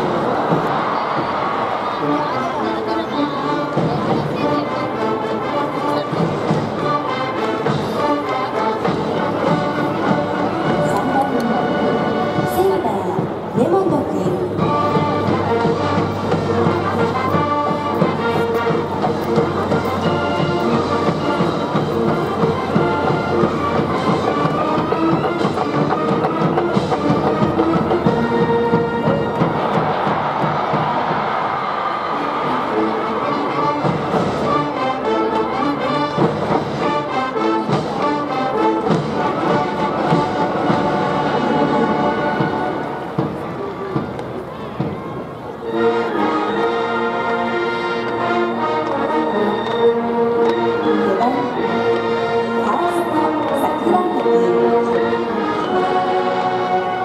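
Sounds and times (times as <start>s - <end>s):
brass band playing: 0.0s - 57.0s.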